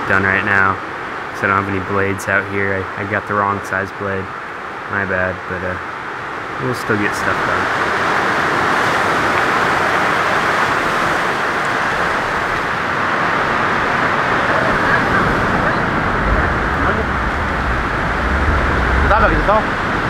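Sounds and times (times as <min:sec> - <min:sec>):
ocean surf breaking: 0:03.2 - 0:20.0
wind rumble on microphone: 0:07.3 - 0:20.0.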